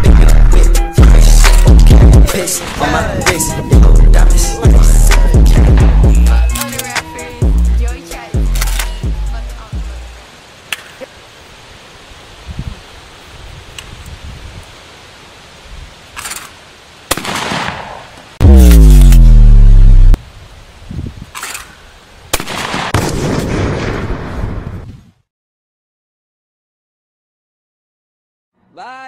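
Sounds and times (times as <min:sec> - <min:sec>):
shotgun shots: 0:17.1 - 0:19.4, 0:22.3 - 0:24.1
distorted boom falling in pitch: 0:18.4 - 0:20.2.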